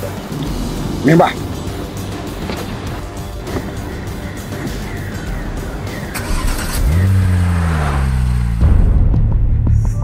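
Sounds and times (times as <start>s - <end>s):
car engine revving: 0.0s - 9.6s.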